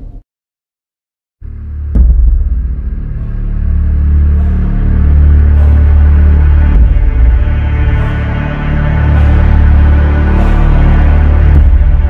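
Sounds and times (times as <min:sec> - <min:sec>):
dark rumbling drone music: 0:01.4 - 0:12.0
deep hit: 0:01.5 - 0:09.8, 0:11.2 - 0:12.0.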